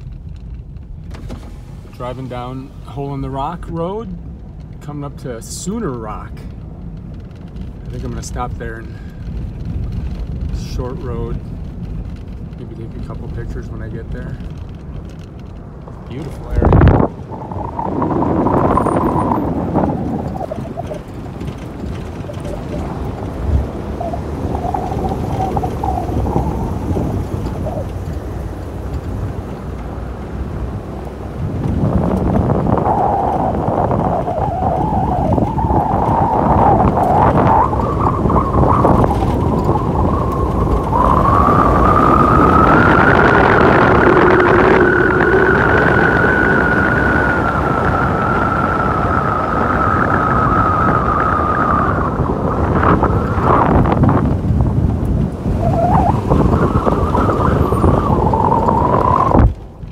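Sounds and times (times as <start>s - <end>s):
tyre and road noise: 0.0s - 59.9s
wind: 0.0s - 59.9s
whining tone: 14.5s - 59.9s.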